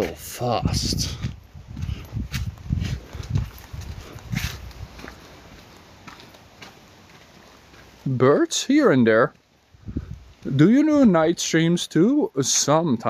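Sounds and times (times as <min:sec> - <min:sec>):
brisk footsteps on brick paving: 0:01.0 - 0:08.1.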